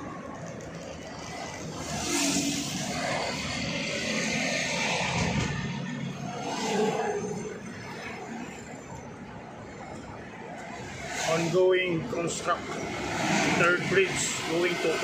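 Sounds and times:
car road noise inside cabin: 0.0s - 15.0s.

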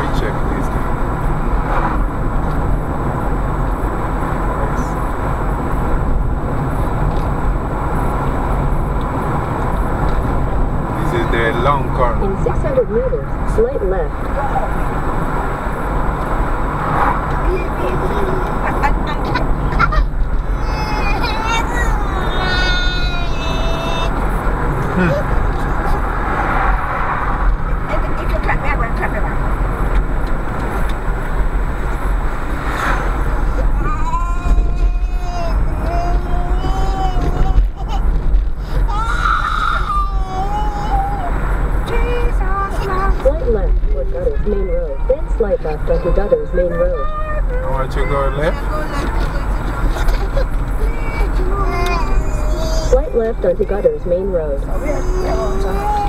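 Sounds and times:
road and engine noise in car: 0.0s - 56.0s
high-pitched voice: 54.7s - 56.0s.

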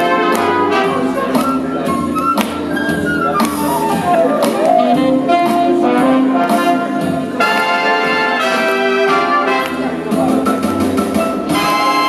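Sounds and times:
big band brass over drum beat: 0.0s - 12.0s.

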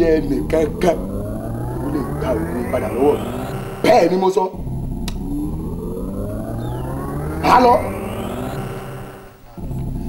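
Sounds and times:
siren-like gliding tone: 0.0s - 10.0s
steady low hum: 0.0s - 10.0s
click: 5.0s - 5.2s.

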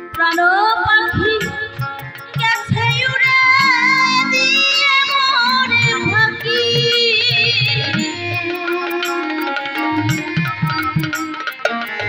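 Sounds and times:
instrumental accompaniment: 0.0s - 12.0s
woman singing into a microphone: 0.0s - 12.0s
drum beat: 9.8s - 12.0s.

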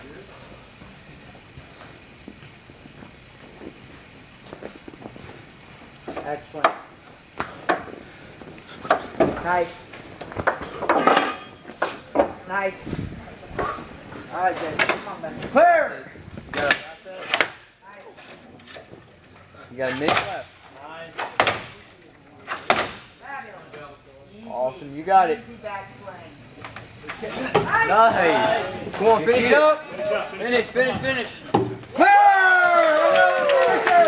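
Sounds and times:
hanging rings clanking: 10.6s - 11.7s.

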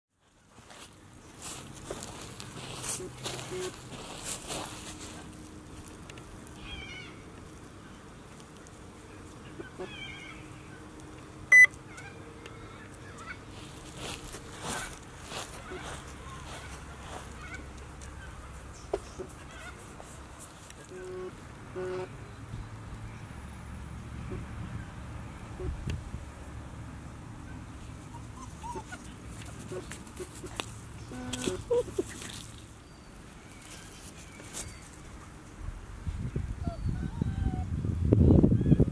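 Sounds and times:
rustling: 0.2s - 6.8s, 12.9s - 22.0s, 27.8s - 35.6s
puppies whimpering: 28.0s - 30.0s, 31.1s - 32.3s, 36.6s - 37.7s.

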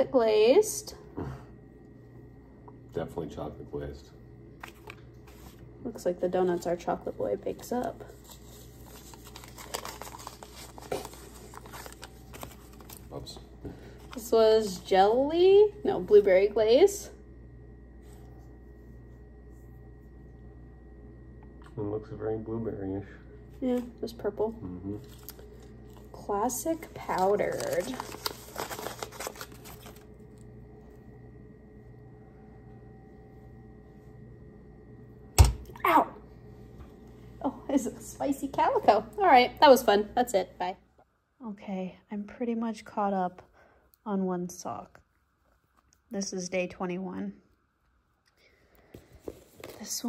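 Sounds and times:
faint steady hum: 0.0s - 50.0s
paper crinkling and rustling: 7.5s - 14.8s, 26.7s - 30.2s, 48.9s - 50.0s.

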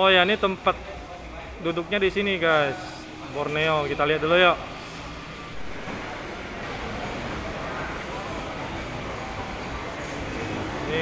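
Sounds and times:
food court ambience: 0.0s - 11.0s.

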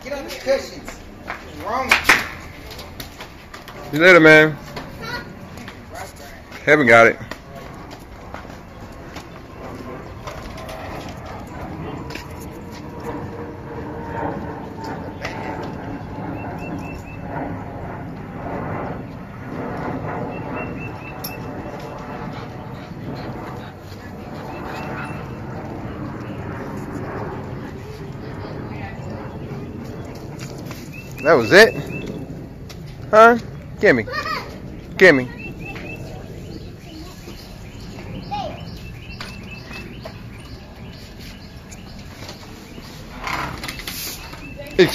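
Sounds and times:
faint indistinct voices: 0.3s - 44.9s
birds calling: 14.8s - 17.5s, 19.2s - 44.9s.

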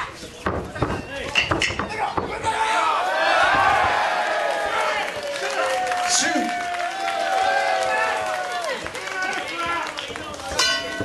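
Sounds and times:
people shouting: 1.8s - 9.8s.

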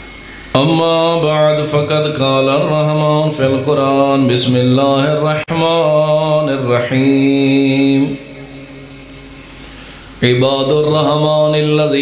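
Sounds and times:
low background hum: 0.0s - 12.0s
man reciting over loudspeaker: 0.5s - 9.3s, 10.2s - 12.0s.

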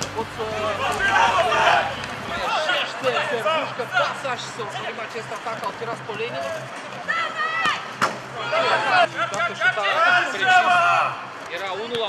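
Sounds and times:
people shouting and calling out: 0.0s - 12.0s.

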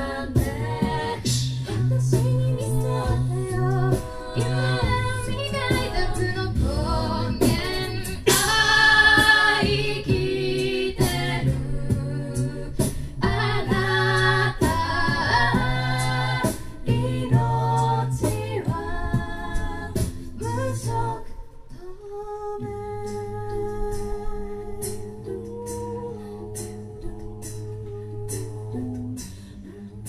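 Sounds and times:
a cappella group singing: 0.0s - 30.0s.

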